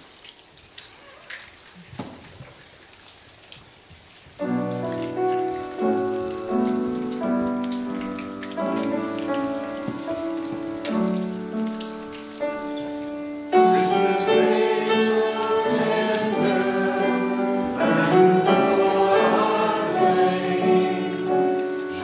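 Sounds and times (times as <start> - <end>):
small crackling clicks: 0.1 - 13.9, 21.5 - 22.0
organ-like keyboard chords: 12.4 - 22.0.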